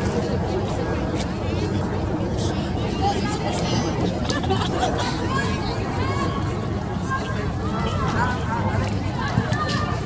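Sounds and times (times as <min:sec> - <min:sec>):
people chattering and calling: 0:00.0 - 0:10.0.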